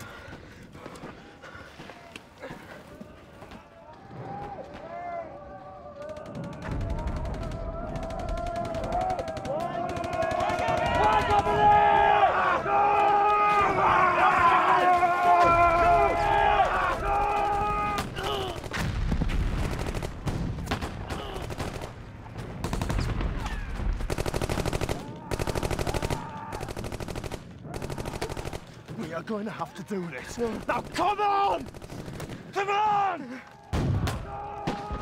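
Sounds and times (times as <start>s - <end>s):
men yelling together: 7.4s - 18.6s
machine-gun fire: 17.3s - 28.7s.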